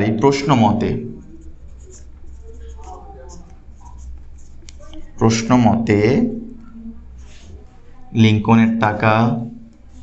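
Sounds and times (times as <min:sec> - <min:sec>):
marker pen writing on whiteboard: 0:00.0 - 0:07.8.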